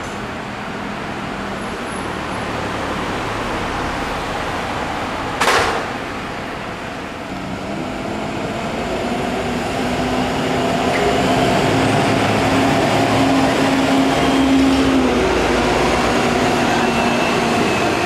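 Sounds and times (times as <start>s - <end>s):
bus diesel engine: 0.0s - 18.0s.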